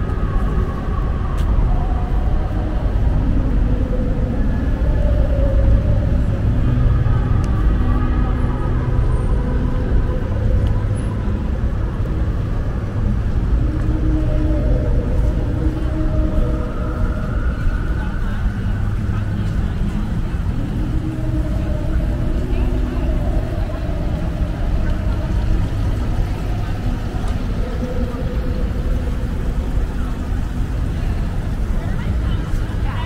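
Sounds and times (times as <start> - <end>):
indistinct voices: 0.0 - 33.0
low rumble of traffic: 0.0 - 33.0.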